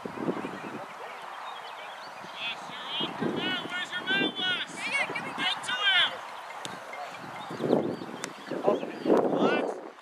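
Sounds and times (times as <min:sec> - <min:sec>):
voices shouting outdoors: 0:00.0 - 0:10.0.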